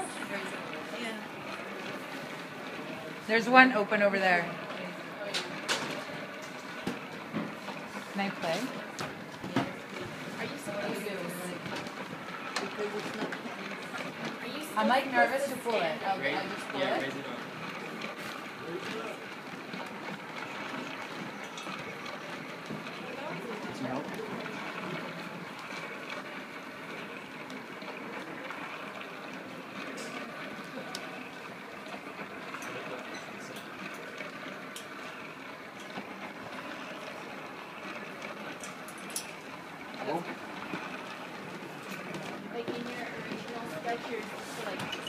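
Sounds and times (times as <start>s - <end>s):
group of people chattering: 0.0s - 45.0s.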